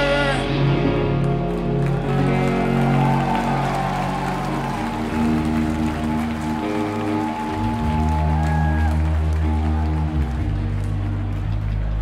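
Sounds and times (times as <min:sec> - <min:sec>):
live rock band playing: 0:00.0 - 0:11.3
electric guitars sustained chords: 0:00.0 - 0:12.0.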